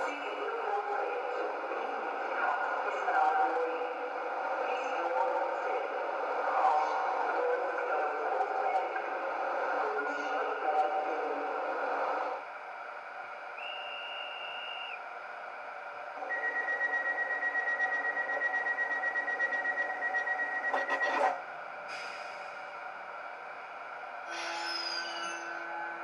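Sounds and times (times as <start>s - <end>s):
spoken announcement over small speaker: 0.0s - 11.6s, 20.6s - 21.4s.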